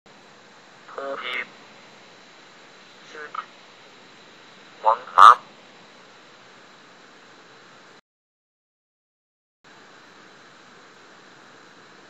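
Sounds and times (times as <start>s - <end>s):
faint hiss: 0.1s - 8.0s, 9.7s - 12.0s
text-to-speech voice word: 0.9s - 1.5s, 4.8s - 5.4s.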